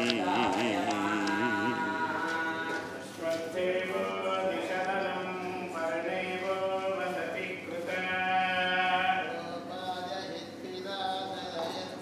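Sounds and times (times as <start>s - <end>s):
steady drone: 0.0s - 2.6s
person singing long notes: 0.0s - 2.9s.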